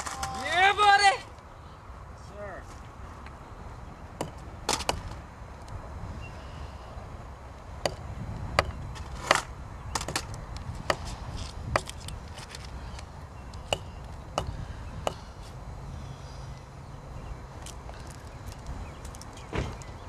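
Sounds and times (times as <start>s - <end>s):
low background rumble: 0.0s - 20.0s
sharp knocks: 4.2s - 5.2s.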